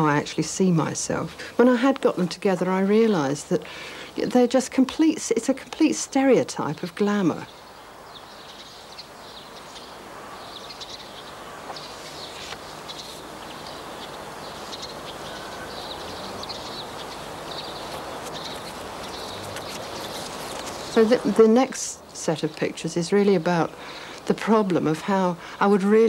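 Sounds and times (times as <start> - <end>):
outdoor background hiss: 0.0 - 26.0
small birds chirping: 0.0 - 26.0.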